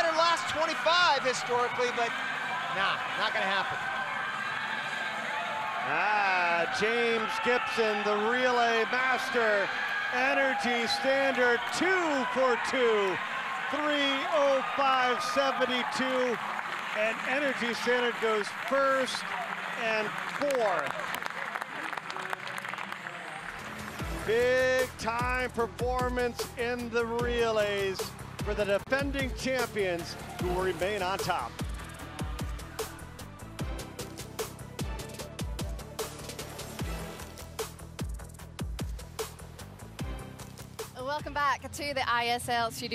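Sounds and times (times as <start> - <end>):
swimming pool arena noise: 0.0 - 37.9
scattered clapping: 15.4 - 24.0.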